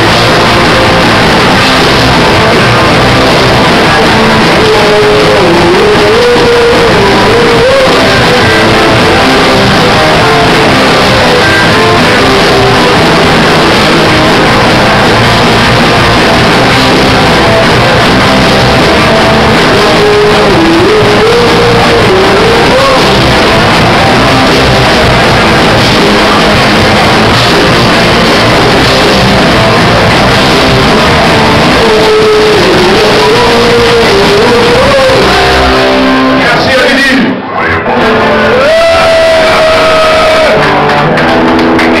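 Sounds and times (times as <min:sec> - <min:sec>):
sliding high guitar note: 0:00.0 - 0:36.6
punk rock band playing loud: 0:00.0 - 0:42.0.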